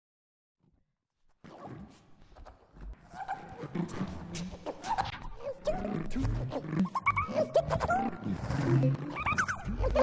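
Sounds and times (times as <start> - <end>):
vocal fragments with pitch glides: 3.6 - 10.0.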